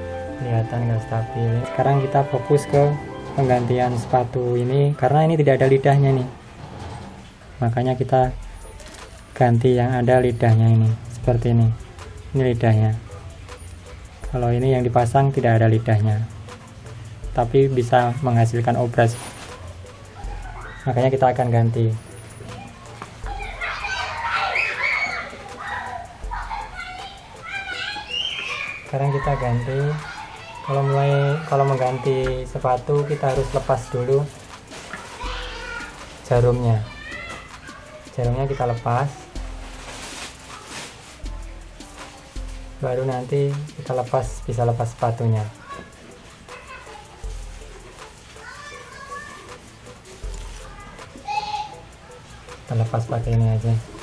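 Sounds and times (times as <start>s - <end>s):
children calling and shouting: 0.0s - 54.0s.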